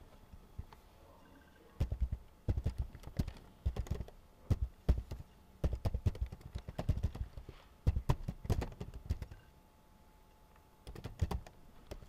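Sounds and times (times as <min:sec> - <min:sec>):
typing on computer keyboard: 0:01.8 - 0:09.5, 0:10.8 - 0:12.0.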